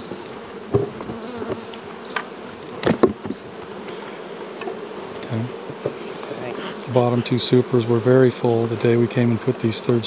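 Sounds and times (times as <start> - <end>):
knocks of wooden hive boxes: 0.0 - 4.0, 4.6 - 6.1
honey bees buzzing: 0.0 - 10.0.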